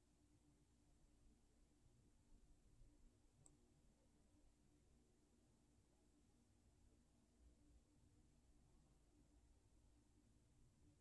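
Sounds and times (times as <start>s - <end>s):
faint low hum: 0.0s - 11.0s
faint click: 3.4s - 3.6s.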